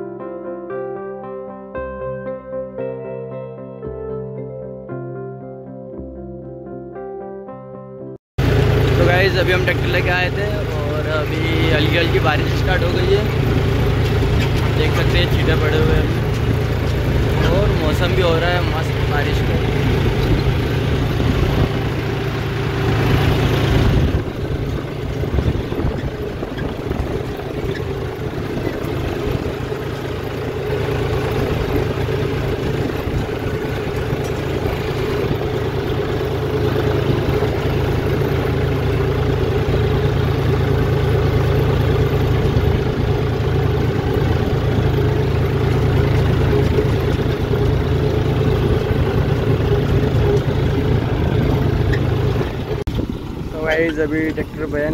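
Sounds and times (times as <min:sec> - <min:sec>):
tractor diesel engine running: 0:08.4 - 0:54.9.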